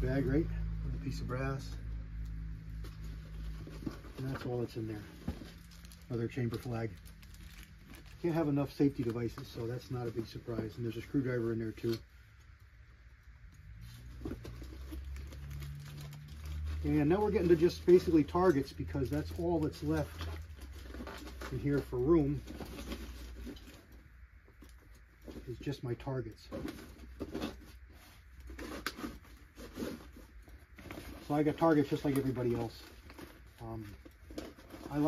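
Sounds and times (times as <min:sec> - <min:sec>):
items rustling inside a canvas bag: 0:00.0 - 0:35.0
low steady hum: 0:00.0 - 0:35.0
fabric bag rustling: 0:02.7 - 0:12.0.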